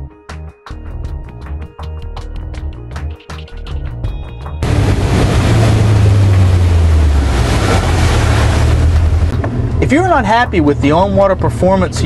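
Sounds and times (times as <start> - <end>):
music: 0.0 - 4.7, 9.3 - 12.0
rushing wind and water: 4.6 - 11.7
motorboat engine rumble: 4.6 - 12.0.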